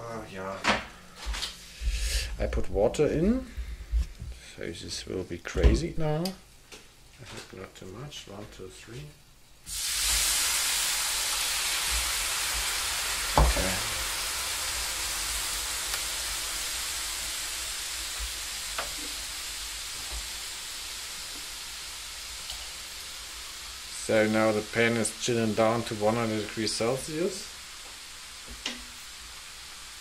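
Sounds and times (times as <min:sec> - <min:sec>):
water hissing in hot pan: 0:00.4 - 0:30.0.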